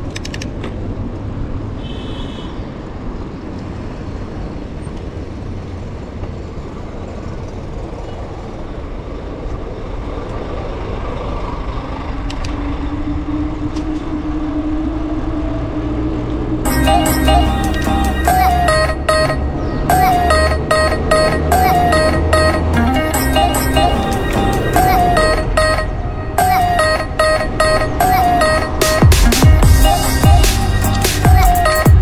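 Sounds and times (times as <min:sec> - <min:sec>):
road traffic: 0:00.0 - 0:32.0
vehicle engine drone: 0:02.9 - 0:32.0
music: 0:16.6 - 0:32.0.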